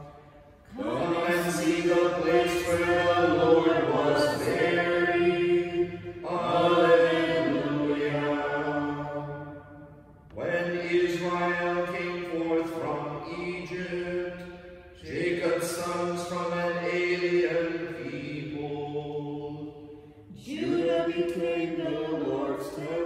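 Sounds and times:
chanted singing: 0:00.0 - 0:09.5.

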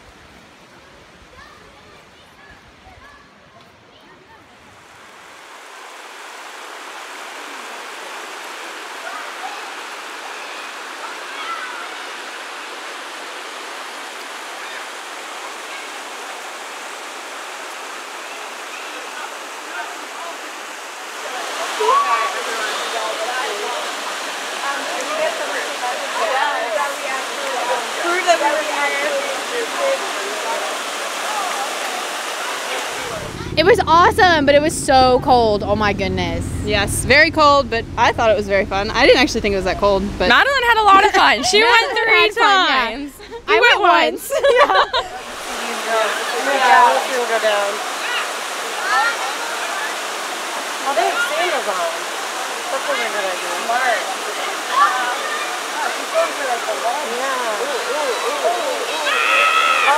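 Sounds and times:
water rushing over rock: 0:04.7 - 0:33.6, 0:36.7 - 0:59.9
people's voices and shouts: 0:18.7 - 0:36.9, 0:40.3 - 0:59.9.

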